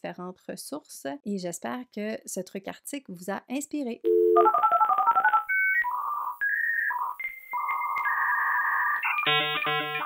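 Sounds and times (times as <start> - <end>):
ringtone-like sound: 4.1 - 10.0
electronic synth jingle: 7.6 - 10.0.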